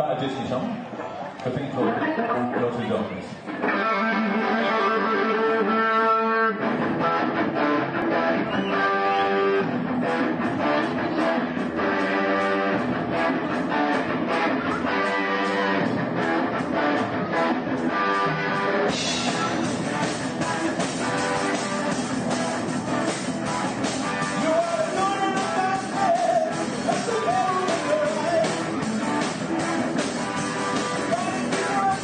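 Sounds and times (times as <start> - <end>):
live rock band playing: 0.4 - 32.0.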